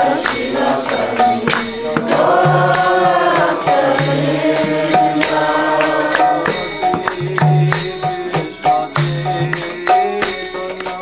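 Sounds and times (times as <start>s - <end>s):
voices chanting: 0.0s - 10.8s
percussion beat: 0.0s - 11.0s.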